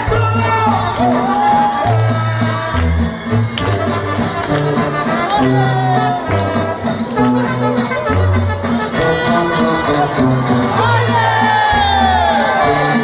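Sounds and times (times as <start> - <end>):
brass band playing: 0.0 - 13.0.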